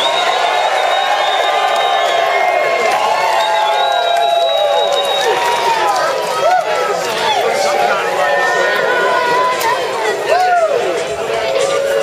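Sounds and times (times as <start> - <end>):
long high whistle: 0.0 - 2.4, 3.3 - 5.4
concert crowd cheering: 0.0 - 12.0.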